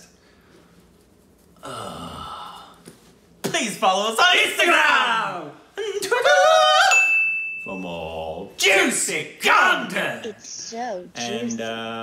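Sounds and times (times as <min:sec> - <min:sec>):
high chime: 0:06.9 - 0:08.4.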